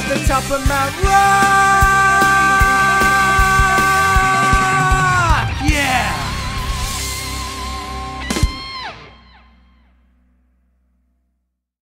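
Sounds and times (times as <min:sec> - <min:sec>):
rock band closing chord: 0:00.0 - 0:09.9
wavering guitar line: 0:00.1 - 0:10.3.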